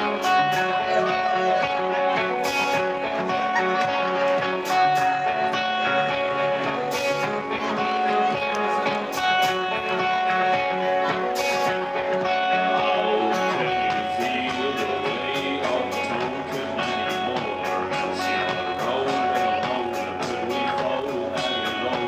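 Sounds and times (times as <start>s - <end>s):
electric guitar chords: 0.0s - 22.0s
live psychedelic rock band: 0.0s - 22.0s.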